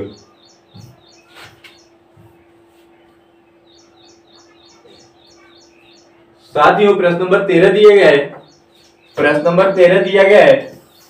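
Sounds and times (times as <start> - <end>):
faint hum: 0.0 - 11.0
small bird chirping: 0.0 - 11.0.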